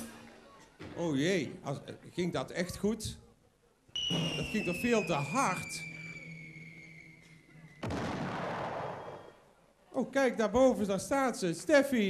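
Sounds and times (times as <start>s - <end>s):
long falling whistle: 4.0s - 8.0s, 8.8s - 9.5s
crash-like burst of noise: 7.8s - 9.4s.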